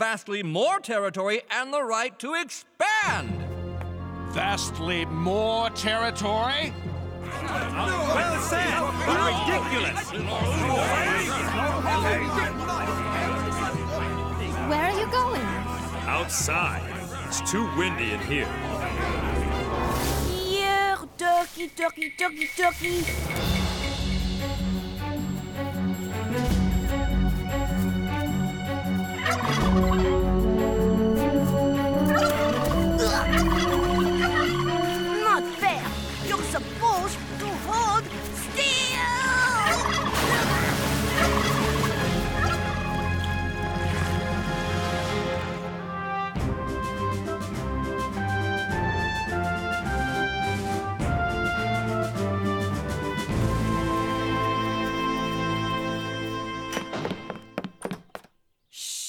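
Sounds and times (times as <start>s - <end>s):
music score: 3.9s - 20.3s, 22.5s - 38.3s, 39.8s - 57.0s
turkey gobbling: 29.1s - 30.3s, 32.0s - 35.2s, 39.6s - 43.0s
footsteps thudding on wooden floor: 56.7s - 58.4s
drawn-out shh hush: 58.7s - 59.0s.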